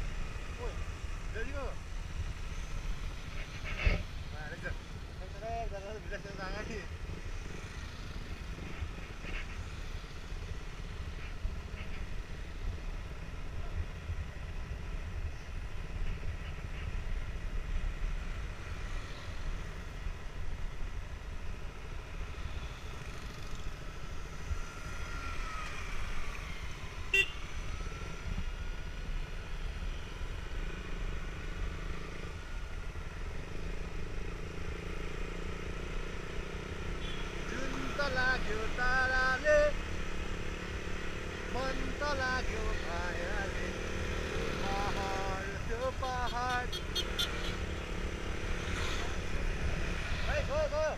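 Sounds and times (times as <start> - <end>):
motorcycle engine rumble: 0.0 - 50.9.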